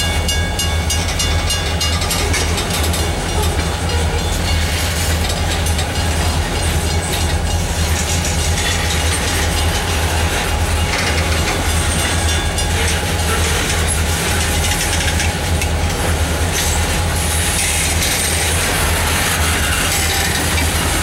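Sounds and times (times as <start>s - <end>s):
train rumbling past: 0.0s - 21.0s
wheels clicking over rail joints: 0.3s - 21.0s.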